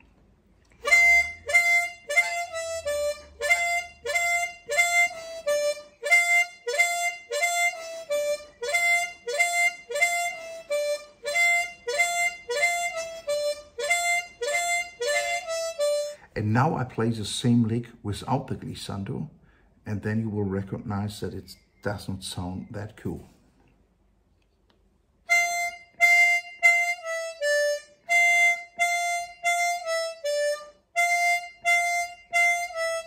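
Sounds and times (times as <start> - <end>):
blues harmonica lick: 0.7 - 16.4, 25.3 - 33.0.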